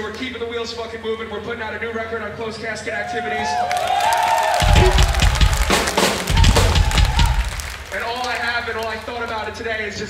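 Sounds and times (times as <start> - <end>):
rock drum kit: 4.6 - 7.8.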